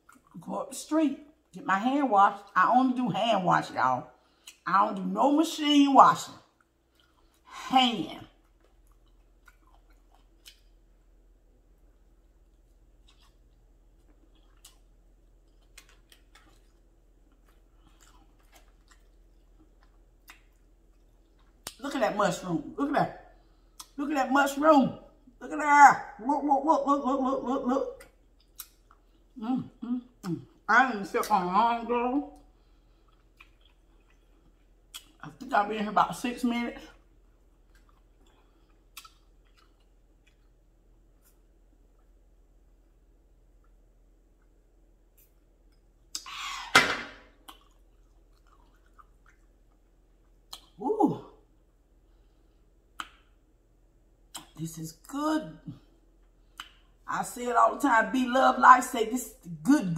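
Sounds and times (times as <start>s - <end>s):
close-up chewing noodles: 8.4s - 11.0s, 12.2s - 21.8s, 37.0s - 41.2s, 47.4s - 50.6s.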